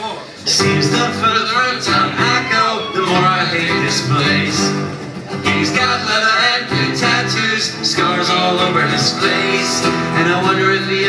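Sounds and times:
live band music: 0.4 - 11.0
strummed acoustic guitar: 0.4 - 11.0.

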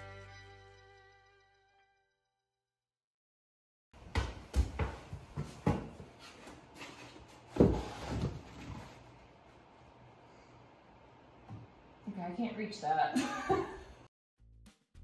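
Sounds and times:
wall panel knocking and scraping: 4.1 - 9.1.

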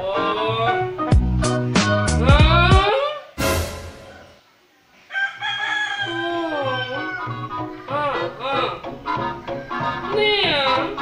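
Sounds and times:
rooster crowing: 5.0 - 7.5.

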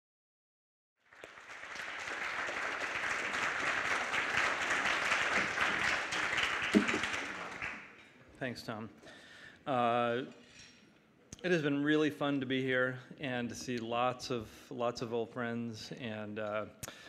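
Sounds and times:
audience applauding: 1.0 - 8.0.

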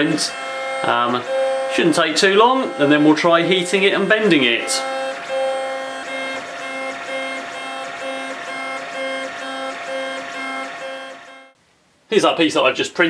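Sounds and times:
three-d printer stepper motors whining: 0.0 - 11.6.

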